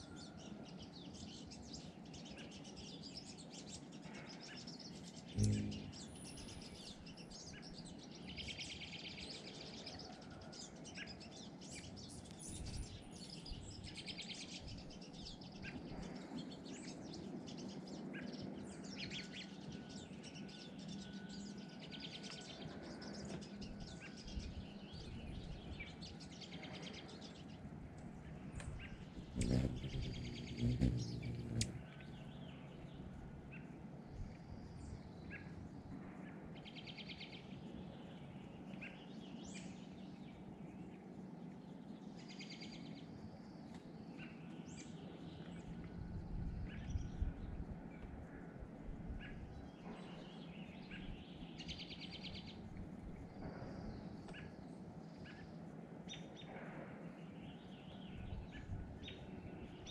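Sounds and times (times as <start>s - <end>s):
birds chirping: 4.6s - 8.6s, 18.7s - 35.9s.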